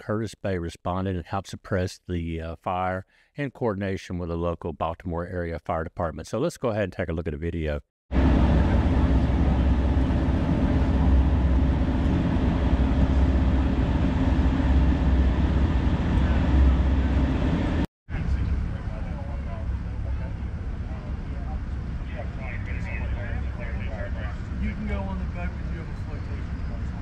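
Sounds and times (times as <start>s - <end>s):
boat engine idling: 8.2s - 17.8s.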